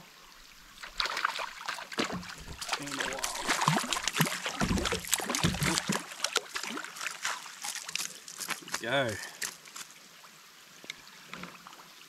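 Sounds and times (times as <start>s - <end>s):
water splashes and drips: 0.3s - 12.0s
rain on water: 0.8s - 10.0s.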